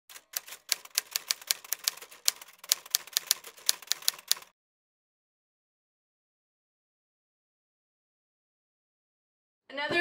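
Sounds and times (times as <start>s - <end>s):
typewriter keys clacking: 0.1s - 4.5s.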